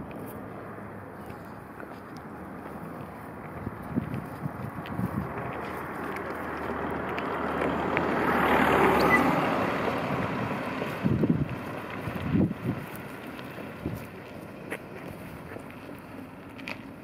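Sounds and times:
low wind buffets: 0.0 - 17.0
wind rushing over microphone: 3.5 - 5.9, 8.1 - 13.1, 13.7 - 14.2.

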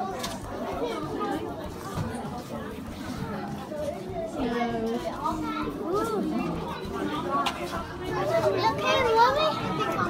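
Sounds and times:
crowd of voices chattering: 0.0 - 10.0
children calling: 8.0 - 10.0.

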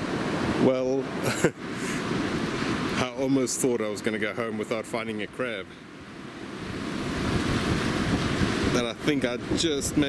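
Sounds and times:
surf on the shore: 0.0 - 10.0
wind: 0.0 - 10.0
person laughing: 1.2 - 2.0.

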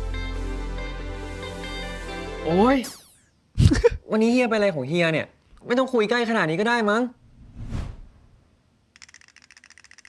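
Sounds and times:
rapid rattle of sharp clicks: 8.9 - 10.0.

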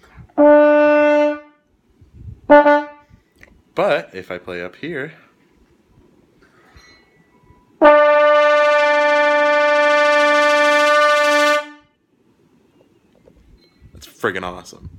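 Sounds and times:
trombone holding high note: 0.4 - 1.6, 2.5 - 3.1, 7.8 - 11.9.

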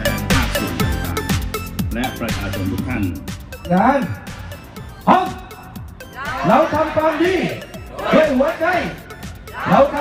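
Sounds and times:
crowd shouting in unison: 6.1 - 8.8, 9.4 - 10.0.

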